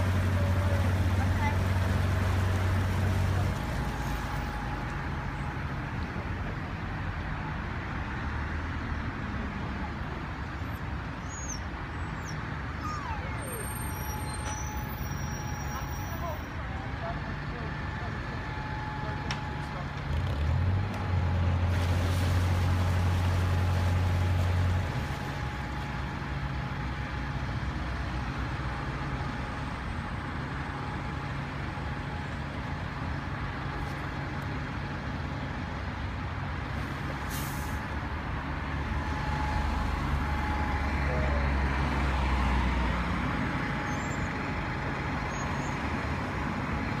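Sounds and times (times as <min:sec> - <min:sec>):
diesel boat engine running: 0:00.0 - 0:07.9, 0:13.7 - 0:47.0.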